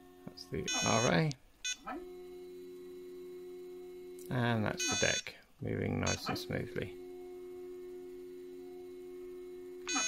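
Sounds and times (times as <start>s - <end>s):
motor drive whine: 0.0s - 10.0s
short electronic beep: 0.4s - 1.8s.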